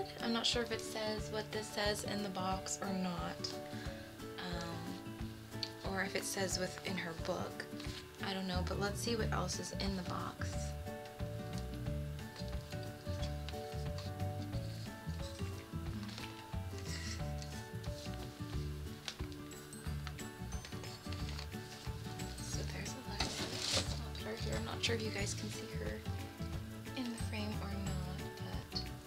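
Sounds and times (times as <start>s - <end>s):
background music: 0.0s - 29.0s
rustling of packaging: 12.2s - 24.4s.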